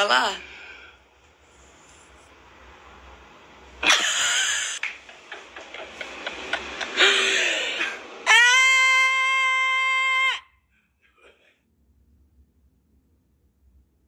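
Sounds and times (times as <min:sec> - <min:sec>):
woman laughing: 0:03.8 - 0:08.0
woman shrieking: 0:08.2 - 0:10.5
high-pitched held cry: 0:08.2 - 0:10.6.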